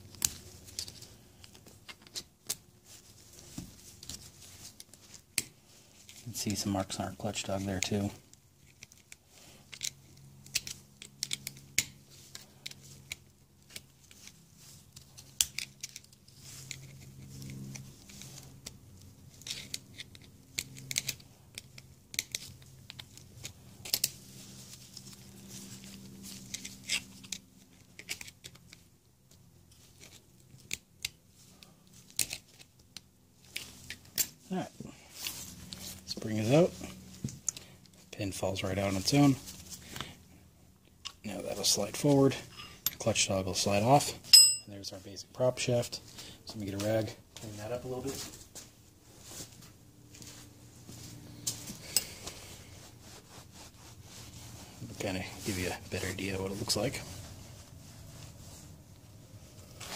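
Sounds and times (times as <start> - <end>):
screwdriver clicking and scraping metal: 19.4 - 24.2.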